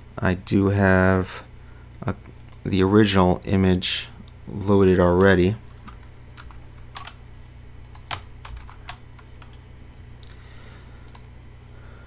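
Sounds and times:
low steady hum: 0.0 - 12.0
keyboard keys clicking: 5.8 - 7.2, 7.8 - 9.6.

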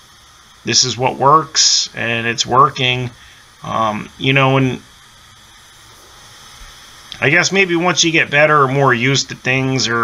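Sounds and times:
spray gun hissing air: 0.0 - 10.0.

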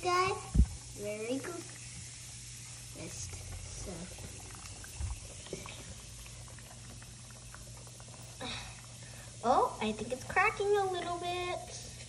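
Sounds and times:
bath bomb fizzing underwater: 0.4 - 12.0
water sloshing: 1.6 - 10.1.

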